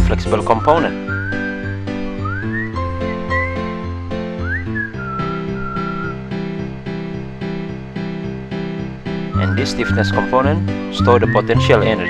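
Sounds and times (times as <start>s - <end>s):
whistled tune: 0.0s - 6.4s, 9.3s - 12.0s
plucked accompaniment: 0.0s - 12.0s.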